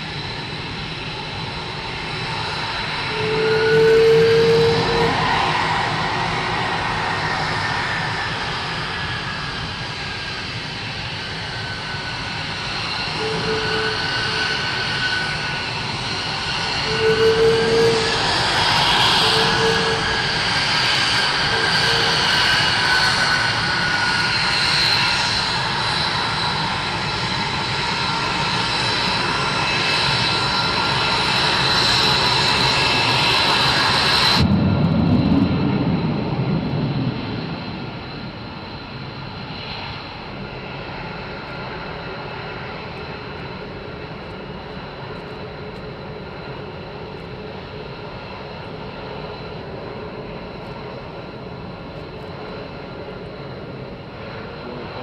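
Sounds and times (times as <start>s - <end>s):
jet engine whine: 0.0s - 55.0s
low rumble: 33.8s - 39.5s.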